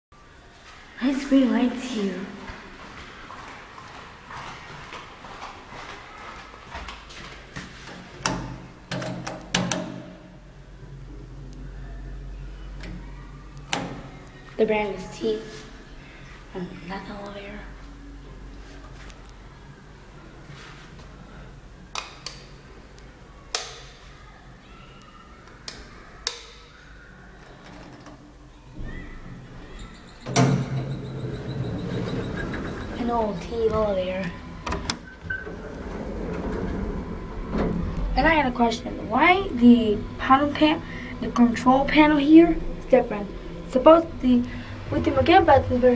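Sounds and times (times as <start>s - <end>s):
elevator low rumble: 10.2s - 21.9s, 25.5s - 45.9s
low hum: 28.3s - 45.9s
elevator knock: 28.8s - 38.2s.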